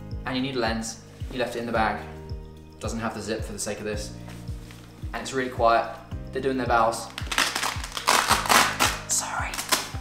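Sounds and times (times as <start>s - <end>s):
velcro ripped open: 7.1s - 10.0s.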